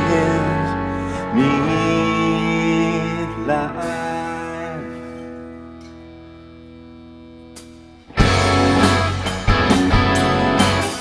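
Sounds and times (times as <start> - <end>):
held guitar chords: 0.0 - 11.0
live rock band playing: 0.0 - 11.0.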